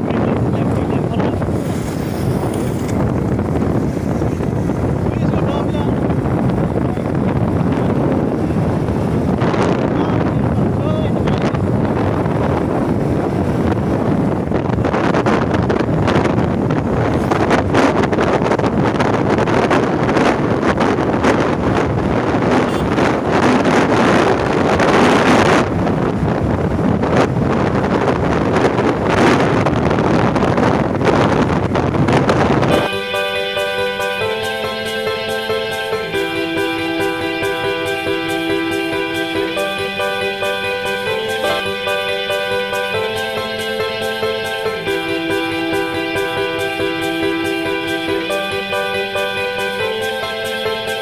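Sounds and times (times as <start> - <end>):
road rush: 0.0 - 51.0
wind buffeting microphone: 0.0 - 51.0
background music: 32.6 - 51.0.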